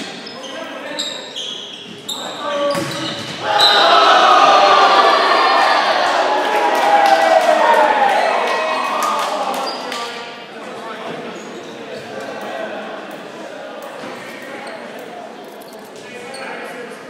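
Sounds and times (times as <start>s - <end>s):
sneaker squeaks: 0.0s - 3.8s, 11.1s - 12.1s, 14.0s - 14.9s, 15.6s - 16.8s
voices echoing in a gymnasium: 0.0s - 17.0s.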